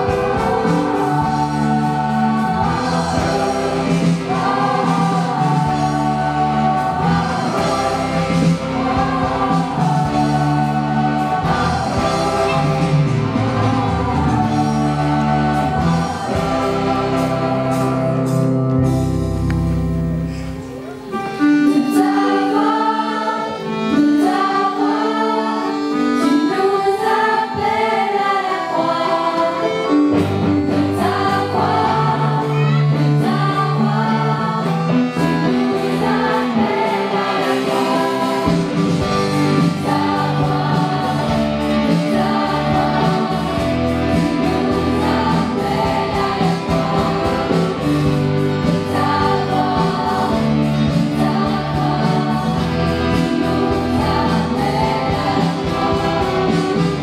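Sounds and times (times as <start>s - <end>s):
choir singing in harmony: 0.0s - 19.5s, 20.2s - 57.0s
deep bass: 0.0s - 20.3s
live band playing: 0.0s - 27.8s, 28.9s - 57.0s.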